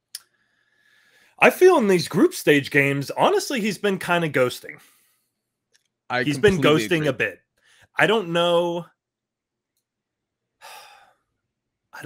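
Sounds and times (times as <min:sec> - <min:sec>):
man breathing: 0:00.3 - 0:01.4, 0:04.8 - 0:05.4, 0:10.6 - 0:11.2.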